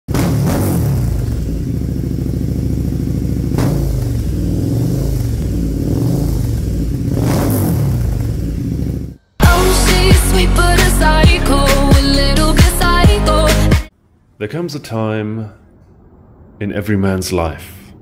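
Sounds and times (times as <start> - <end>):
motorcycle engine revving: 0.1 - 9.7.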